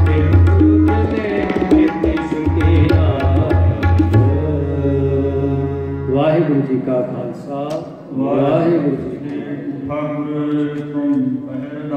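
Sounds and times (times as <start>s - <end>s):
man chanting: 0.0s - 11.9s.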